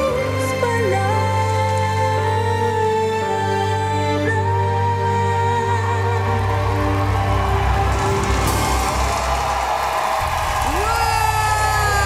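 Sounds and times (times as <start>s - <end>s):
person singing ballad: 0.0s - 7.4s
audience cheering and applauding: 5.0s - 12.0s.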